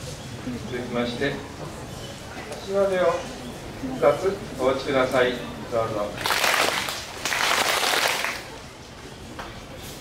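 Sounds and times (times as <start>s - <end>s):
group clapping hands: 6.2s - 8.6s.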